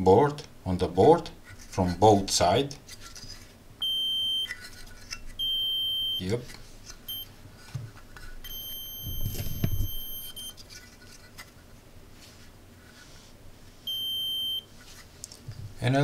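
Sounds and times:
metal detector buzzer beeping: 3.8 - 4.6, 5.4 - 6.3, 7.1 - 7.3, 8.4 - 10.5, 13.9 - 14.7.

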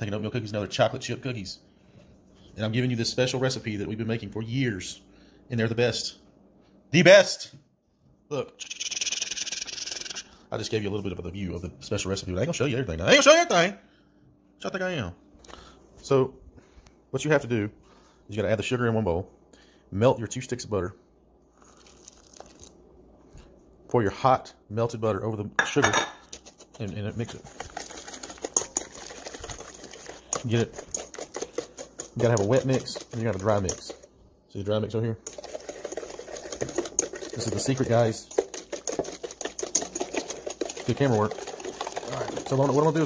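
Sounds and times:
melted butter crackling patter: 21.5 - 22.8, 26.2 - 43.0.

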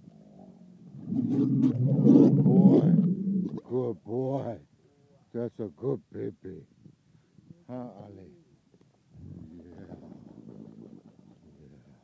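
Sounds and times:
camel rumbling call: 0.2 - 3.7, 9.1 - 11.4.

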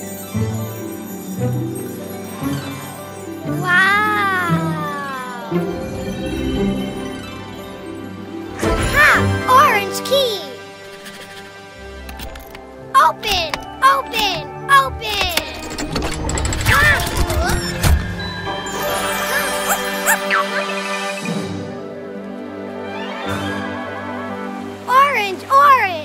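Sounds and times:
background music: 0.0 - 26.0
cartoon dog whining cry: 3.6 - 5.6, 19.3 - 20.6.

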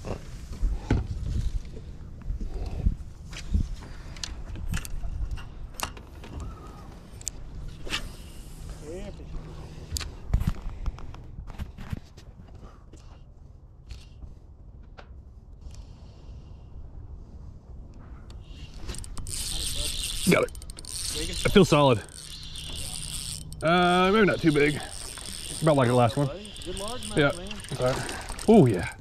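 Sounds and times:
fishing reel clicks and scrapes: 18.3 - 29.0.

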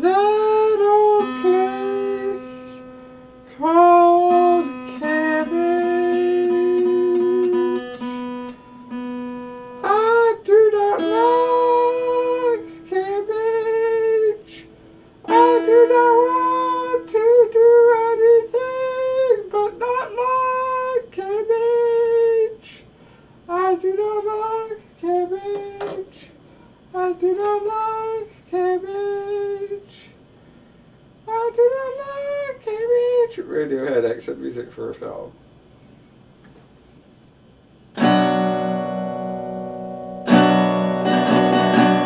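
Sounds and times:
man humming: 0.0 - 2.9, 3.5 - 8.0, 9.8 - 14.7, 15.3 - 22.9
man singing in high voice: 0.0 - 8.1, 9.8 - 22.9, 23.5 - 30.2, 31.2 - 33.6
acoustic guitar: 0.0 - 29.9, 37.9 - 42.0.

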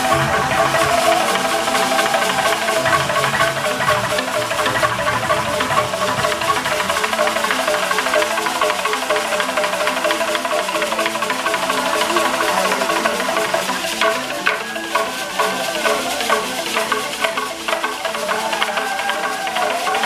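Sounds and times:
wooden xylophone played with sticks: 0.0 - 20.0.

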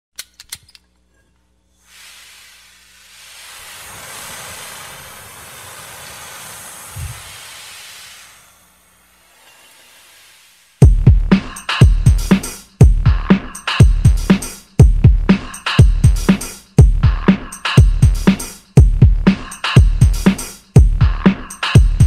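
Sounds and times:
propeller wash hiss: 1.8 - 10.8.

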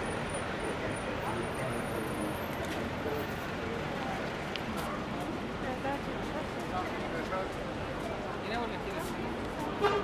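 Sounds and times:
pedestrians chattering: 0.0 - 10.0
street noise: 0.0 - 10.0.

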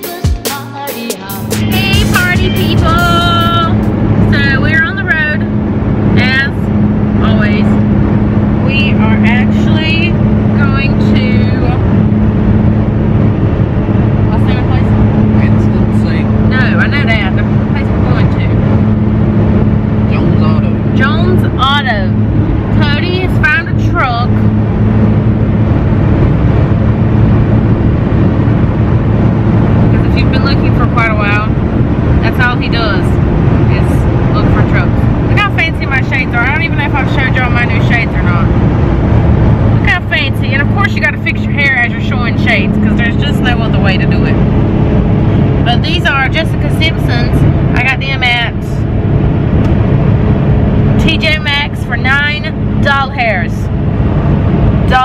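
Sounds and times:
people talking: 0.0 - 5.5, 6.1 - 7.8, 8.6 - 11.8, 14.2 - 18.6, 20.0 - 24.5, 29.9 - 31.6, 32.2 - 38.6, 39.8 - 44.4, 45.6 - 48.8, 50.9 - 53.7
truck engine and road drone: 0.0 - 55.0.

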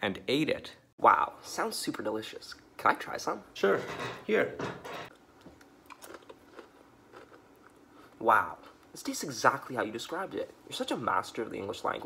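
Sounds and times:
cracker crunching: 5.1 - 7.8.

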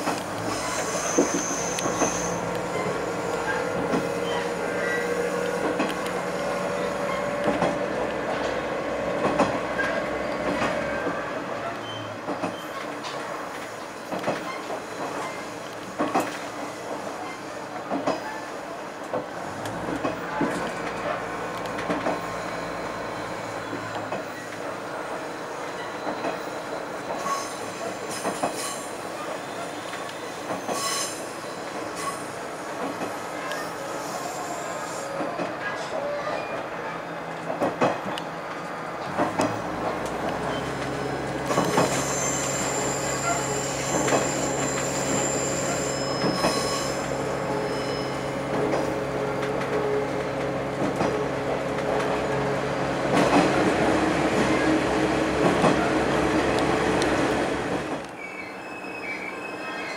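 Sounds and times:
high wheel squeal: 0.4 - 5.4, 25.2 - 32.4, 40.4 - 48.5, 58.2 - 59.9.

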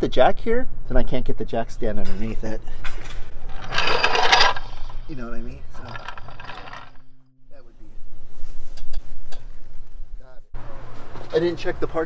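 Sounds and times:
floor jack rattling on concrete: 3.5 - 4.8, 5.8 - 7.0.

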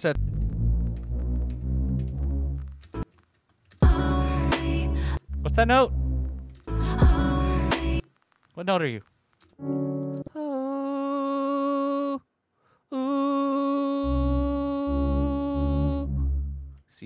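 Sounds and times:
synth bass short low notes: 0.0 - 2.7
person humming a steady note: 10.2 - 12.2, 12.9 - 16.5.

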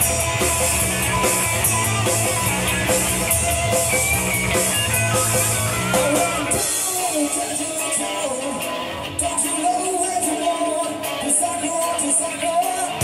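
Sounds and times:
blues-rock band playing: 0.0 - 13.0
electric guitar: 0.0 - 13.0.

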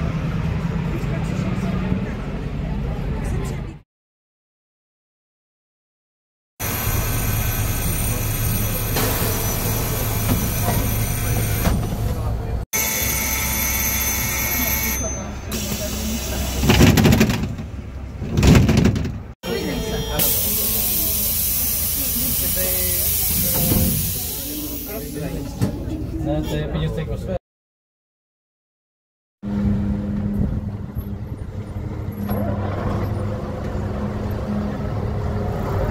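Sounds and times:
bus doors opening and closing: 6.7 - 26.2, 30.2 - 35.0
compressed air hissing: 20.2 - 25.2
vehicle low hum: 29.4 - 35.9.

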